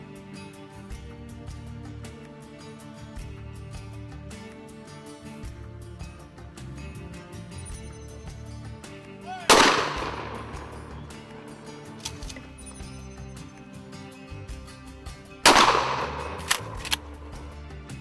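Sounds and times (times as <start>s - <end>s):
background music: 0.0s - 18.0s
sharp cracks: 9.4s - 12.5s, 15.5s - 17.5s
shotgun blasts: 9.5s - 11.3s, 15.5s - 17.0s.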